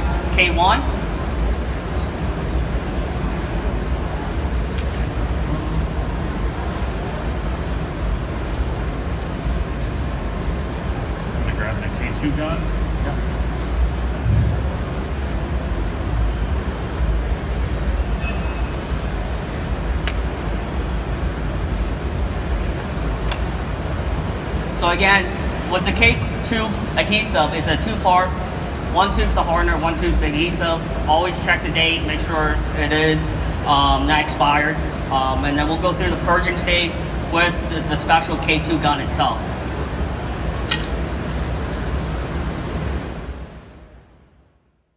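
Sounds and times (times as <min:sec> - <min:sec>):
hall background rumble and hiss: 0:00.0 - 0:44.7.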